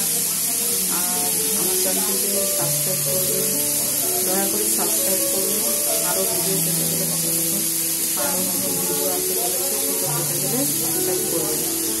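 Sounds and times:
background music: 0:00.0 - 0:12.0
steady high hiss: 0:00.0 - 0:12.0
woman talking: 0:00.0 - 0:12.0.

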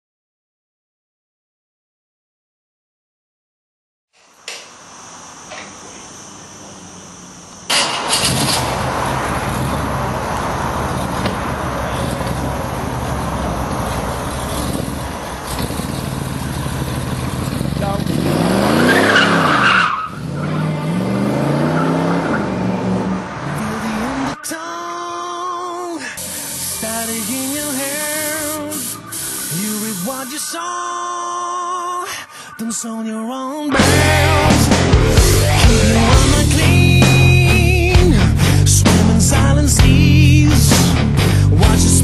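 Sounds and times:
loud rushing noise: 0:04.5 - 0:19.5, 0:33.8 - 0:39.3
car engine revving: 0:06.0 - 0:24.4, 0:33.8 - 0:42.0.

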